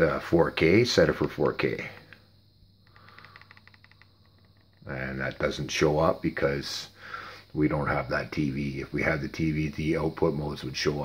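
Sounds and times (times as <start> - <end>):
low steady hum: 0.0 - 11.0
rapid faint clicks: 2.8 - 5.4.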